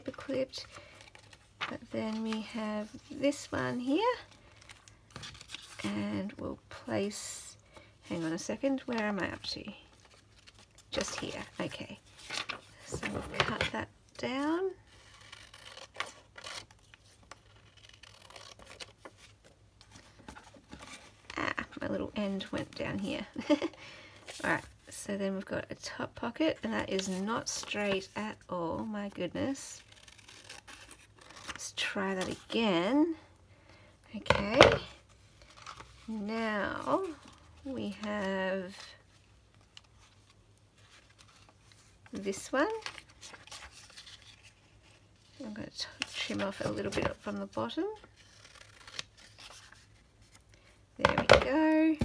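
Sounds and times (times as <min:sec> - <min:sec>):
paper rustle: 0:08.2 - 0:13.7, 0:36.8 - 0:50.5.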